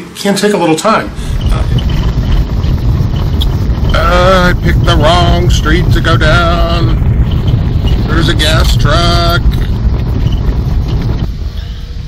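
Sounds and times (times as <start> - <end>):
tyres rumbling on cobblestones: 1.1 - 12.0.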